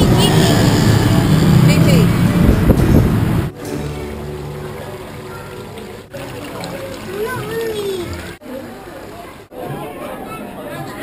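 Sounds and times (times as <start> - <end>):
voices: 0.0 - 2.2
street traffic: 0.0 - 9.6.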